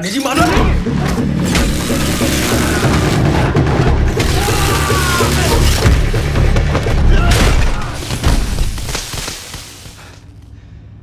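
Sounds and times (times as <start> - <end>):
dramatic action film score: 0.0 - 11.0.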